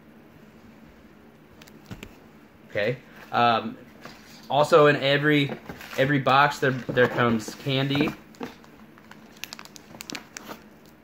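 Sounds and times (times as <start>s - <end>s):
plastic candy wrappers crinkling: 5.9s - 11.0s.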